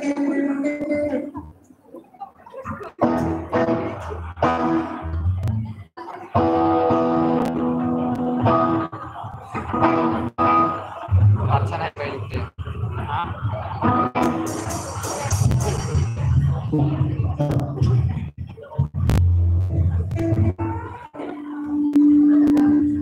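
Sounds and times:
live rock band: 0:03.0 - 0:05.1, 0:06.3 - 0:11.2, 0:13.7 - 0:17.0.

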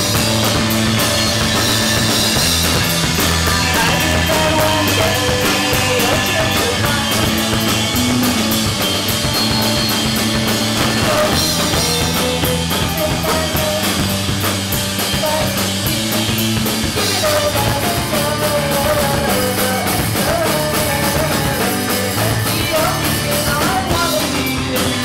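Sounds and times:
fast cymbal beat: 0:00.0 - 0:25.0
live rock band playing: 0:00.0 - 0:25.0
person singing: 0:03.4 - 0:08.5, 0:10.8 - 0:14.2, 0:15.0 - 0:25.0.

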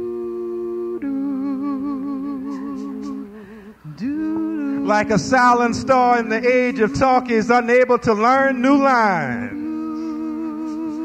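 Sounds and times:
wordless vocal humming: 0:00.0 - 0:11.0.

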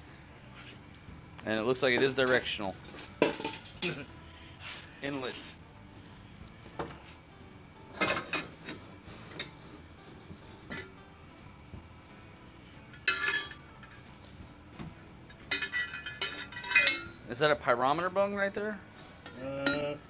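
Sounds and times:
metal pipes knocking and clinking: 0:02.0 - 0:04.0, 0:13.0 - 0:14.0, 0:15.4 - 0:17.2.

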